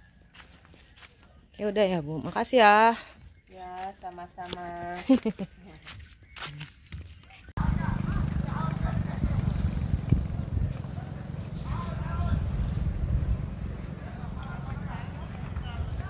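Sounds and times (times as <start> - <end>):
wind buffeting microphone: 7.6 - 16.0.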